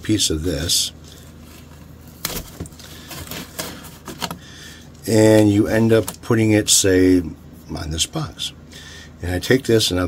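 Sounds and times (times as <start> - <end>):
tape crackling and rustling: 1.0 - 6.4.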